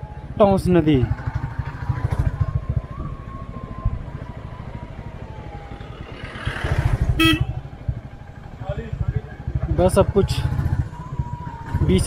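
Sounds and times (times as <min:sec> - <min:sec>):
motorcycle engine running: 0:00.9 - 0:03.3, 0:05.8 - 0:12.0
short horn beep: 0:07.2 - 0:07.6.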